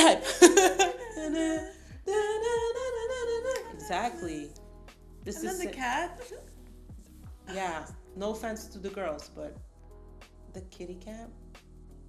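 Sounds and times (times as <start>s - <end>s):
woman humming: 0.5s - 4.5s.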